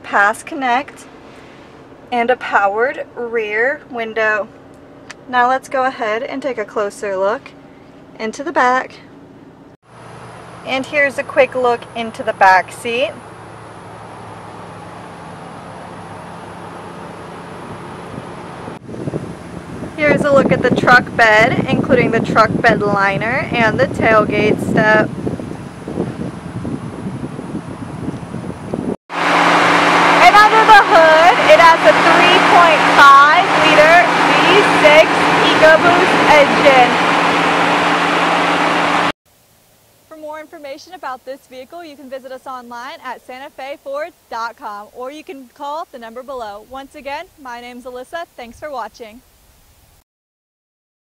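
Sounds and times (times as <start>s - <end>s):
woman speaking: 0.0s - 1.1s, 2.1s - 4.5s, 5.1s - 7.6s, 8.2s - 9.1s, 10.7s - 13.2s, 20.0s - 25.1s, 30.2s - 37.0s, 40.1s - 49.2s
truck engine idling: 7.2s - 20.6s, 29.1s - 40.8s
wind noise on microphone: 17.3s - 39.1s.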